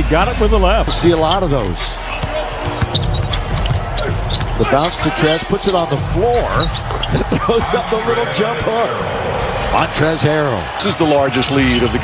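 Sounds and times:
arena crowd noise: 0.0 - 12.0
background music: 0.0 - 12.0.

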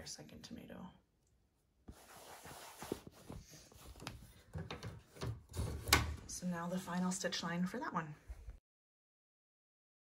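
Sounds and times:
hands rubbing felt on plastic hoop: 1.9 - 4.2.

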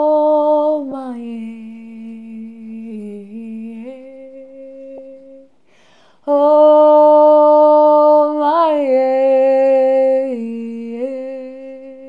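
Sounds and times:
woman humming: 1.2 - 5.5, 10.1 - 12.0
breath: 5.6 - 6.3.

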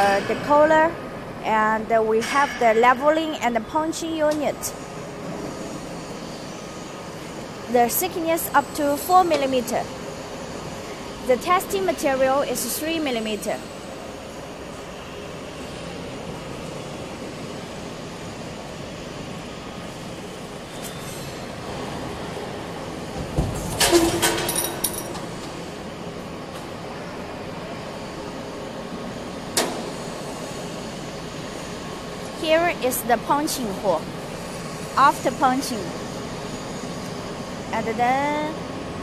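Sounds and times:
roll forming machine drone: 0.0 - 39.0.

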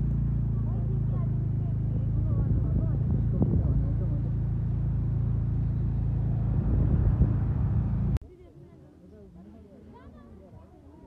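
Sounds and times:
scooter engine running: 0.0 - 8.2
wind and road noise: 0.0 - 8.2.

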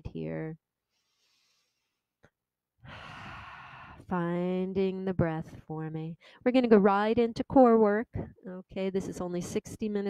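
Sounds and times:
long breath close to microphone: 2.8 - 4.1.

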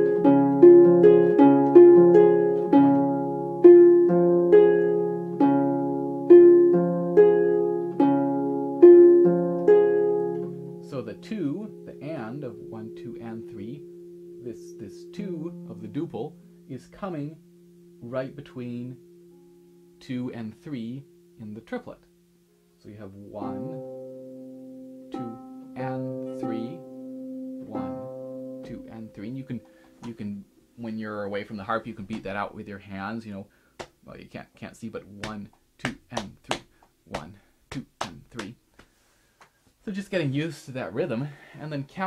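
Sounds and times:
harp strings plucked: 0.0 - 19.4, 23.3 - 30.4
man's voice sliding in pitch: 27.6 - 31.0.

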